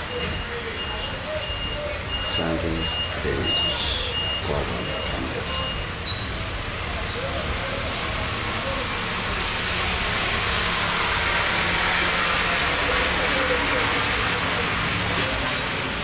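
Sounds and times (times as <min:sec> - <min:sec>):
bus vehicle noise: 0:00.0 - 0:16.0.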